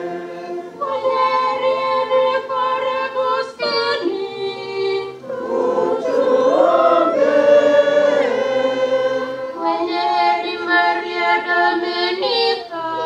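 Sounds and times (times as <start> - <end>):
voices singing a hymn: 0.0 - 13.0.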